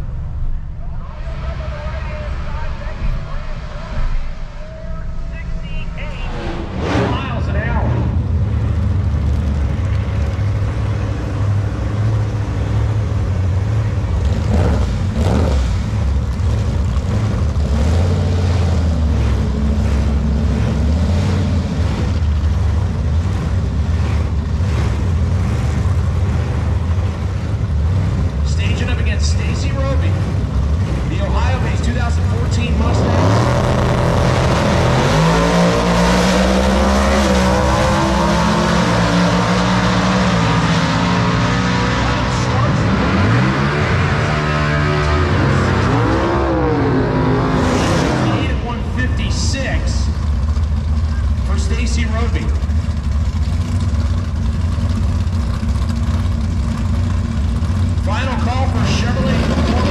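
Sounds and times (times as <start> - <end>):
drag car engines idling: 0.0 - 59.9
engines at full throttle: 0.0 - 59.9.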